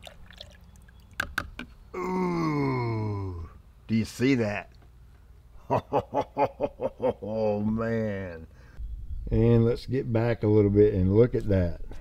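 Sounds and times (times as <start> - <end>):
liquid pouring into jug: 0.0 - 1.2.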